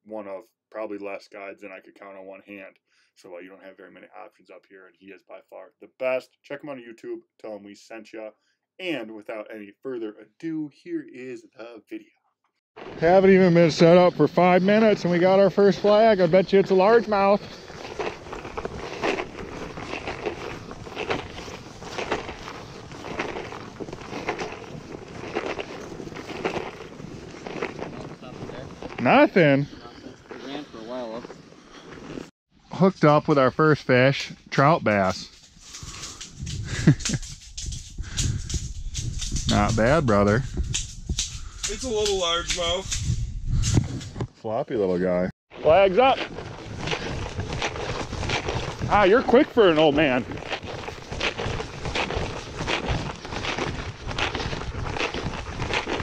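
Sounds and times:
footsteps crunching in snow: 12.8s - 32.3s, 34.6s - 43.2s, 45.5s - 56.0s
wind on microphone: 35.8s - 44.3s.

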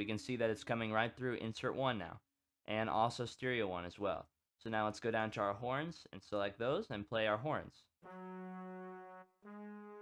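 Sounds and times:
brass section held chords: 8.0s - 10.0s.

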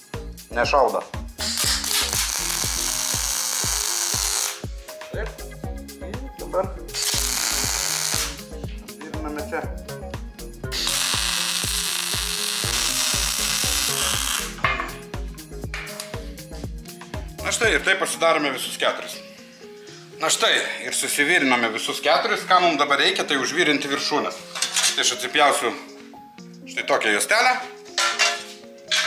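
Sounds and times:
background music with beat: 0.0s - 20.8s, 23.3s - 29.0s
welder arc hissing: 1.4s - 4.8s, 6.9s - 8.5s, 10.7s - 14.6s.

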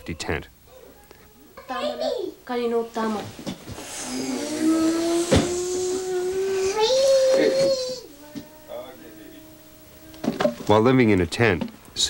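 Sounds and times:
small child crying: 4.0s - 10.4s.

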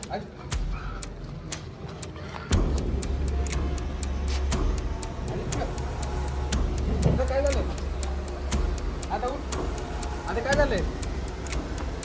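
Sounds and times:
sharp ticking: 0.0s - 12.0s.

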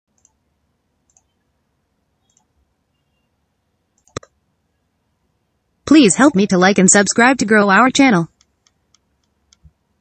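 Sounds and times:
computer mouse clicks: 0.2s - 0.4s, 1.0s - 1.4s, 2.2s - 2.5s, 4.0s - 4.4s, 8.3s - 9.8s.

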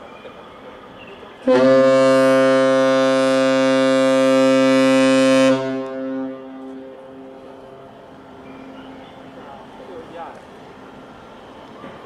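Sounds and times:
deep ship horn blast: 1.4s - 9.2s.

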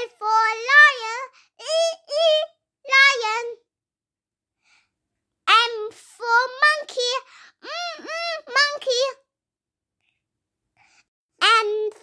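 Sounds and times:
child singing a chant: 0.0s - 3.6s, 5.5s - 9.2s, 11.4s - 12.0s.

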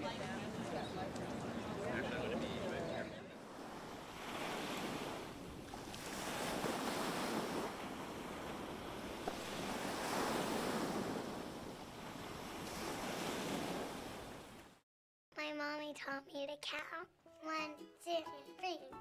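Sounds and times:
waves breaking on a beach: 0.0s - 14.8s.

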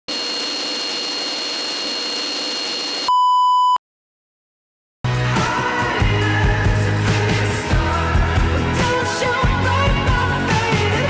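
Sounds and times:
loud electronic beep: 0.1s - 3.8s.

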